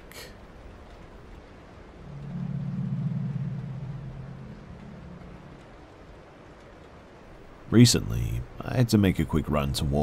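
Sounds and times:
low droning tone: 1.9s - 6.3s.

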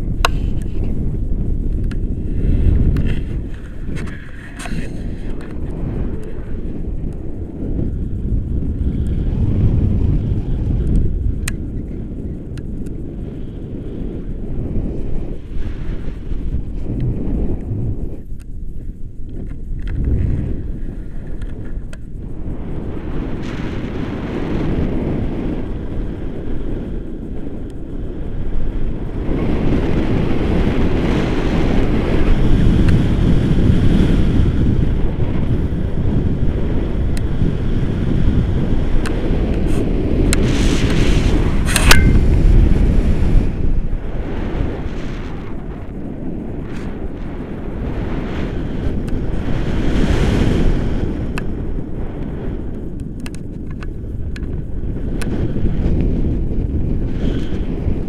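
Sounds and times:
wind buffeting microphone: 0.0s - 58.0s
sharp crackle: 38.7s - 58.0s.

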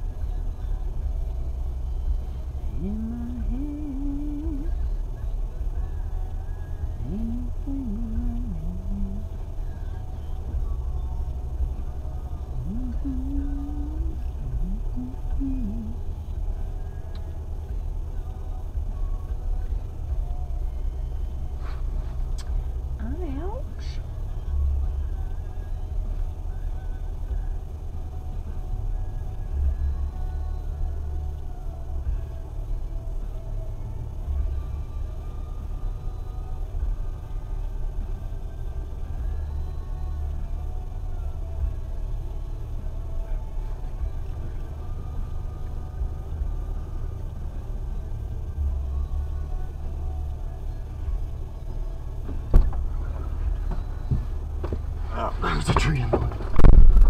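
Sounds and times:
engine idling: 0.0s - 57.0s.

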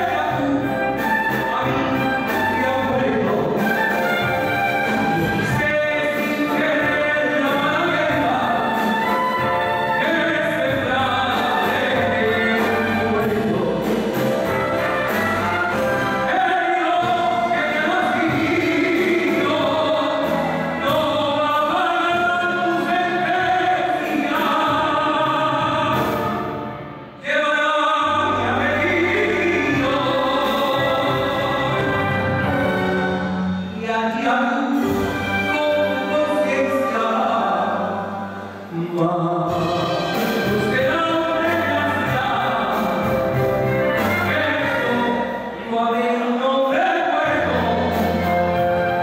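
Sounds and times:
instrumental accompaniment: 0.0s - 27.2s, 28.0s - 46.0s, 47.2s - 49.0s
live band playing: 0.0s - 49.0s
man singing with vibrato: 0.0s - 49.0s.

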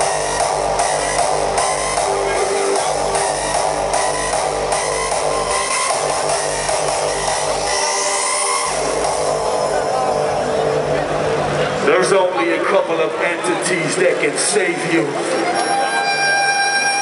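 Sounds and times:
rising synth sweep: 0.0s - 11.8s
hardstyle music over loudspeakers: 0.0s - 17.0s.

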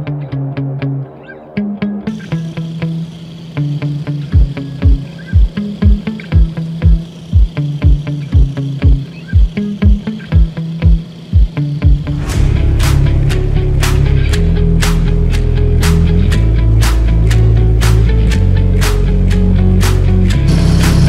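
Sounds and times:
steady kick drum: 4.2s - 21.0s
cymbal crashes: 11.4s - 16.3s, 20.4s - 21.0s.

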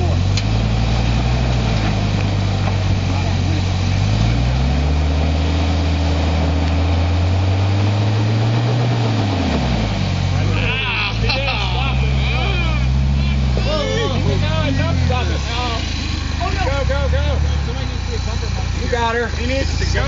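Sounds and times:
suv engine pulling under load: 0.0s - 20.0s.

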